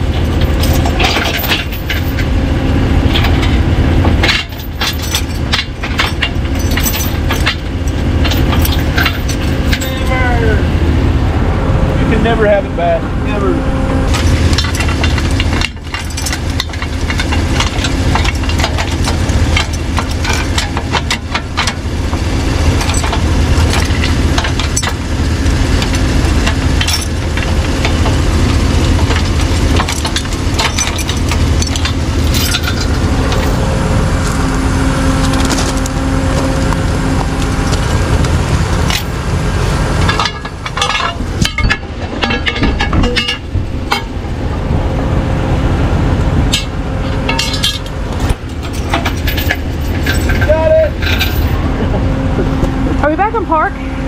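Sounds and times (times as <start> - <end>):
metal chain clinking and rattling: 0.0 - 2.3, 4.2 - 10.3, 14.1 - 21.8, 22.7 - 25.1, 25.7 - 33.7, 40.1 - 44.2, 46.5 - 51.6
engine idling: 0.0 - 54.0.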